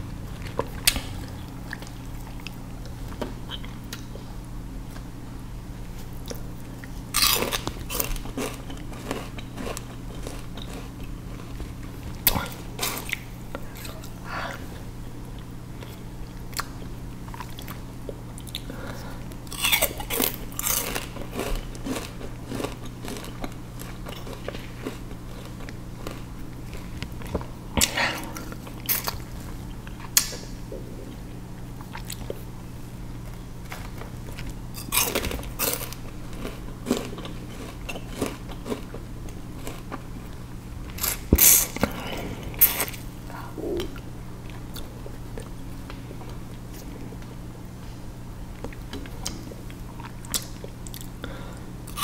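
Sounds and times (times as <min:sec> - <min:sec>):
steady low hum: 0:00.0 - 0:52.0
chewing sugarcane crunches: 0:06.1 - 0:14.2, 0:19.4 - 0:30.5, 0:33.2 - 0:41.9.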